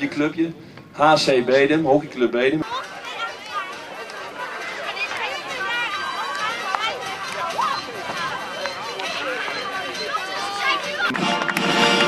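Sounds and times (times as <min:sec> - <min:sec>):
high-pitched voices shouting: 0:04.4 - 0:11.2.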